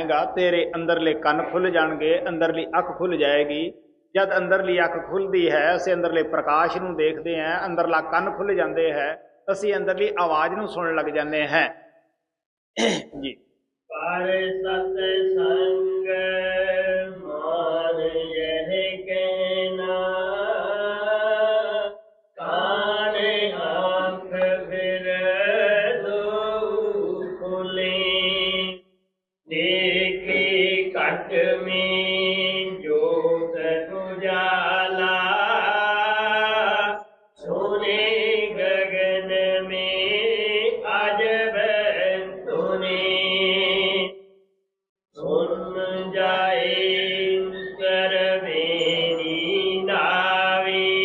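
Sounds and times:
person chanting a hymn: 0:14.0 - 0:28.7, 0:29.5 - 0:44.1, 0:45.2 - 0:51.0.

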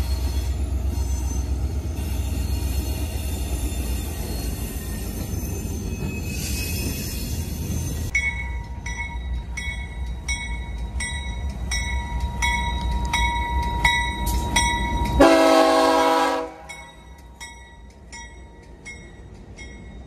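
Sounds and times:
locomotive horn blast: 0:15.2 - 0:16.8.

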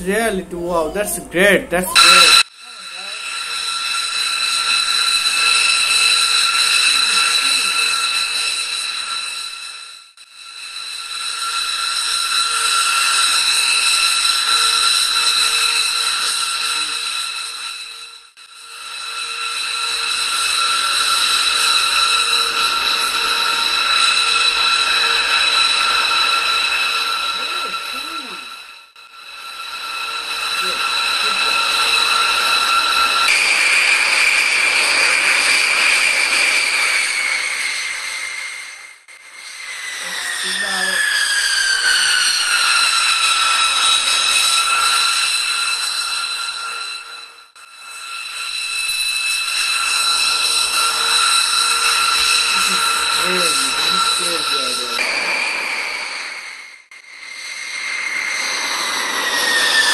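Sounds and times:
jet engines whining: 0:39.7 - 0:45.2.

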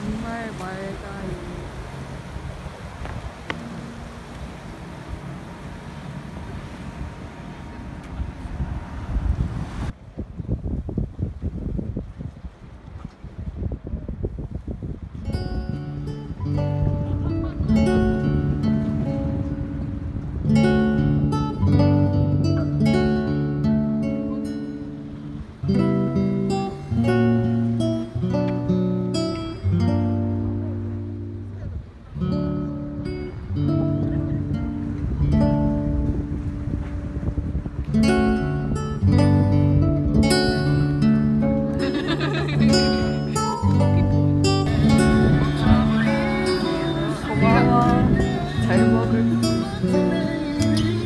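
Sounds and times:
acoustic guitar picked and strummed: 0:00.0 - 0:08.2, 0:15.0 - 0:51.0
small waves washing onto sand: 0:00.0 - 0:15.2, 0:15.8 - 0:51.0
wind on microphone: 0:00.0 - 0:51.0.

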